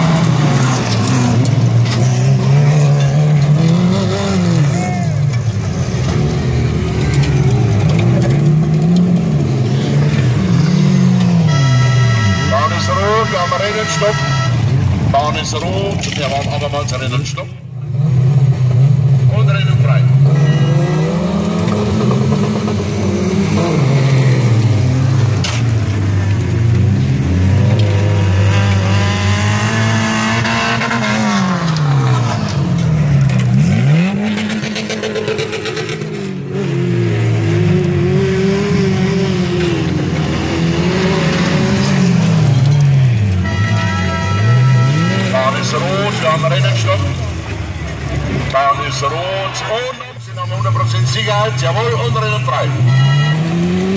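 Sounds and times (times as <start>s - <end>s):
stock car engines revving: 0.0s - 53.9s.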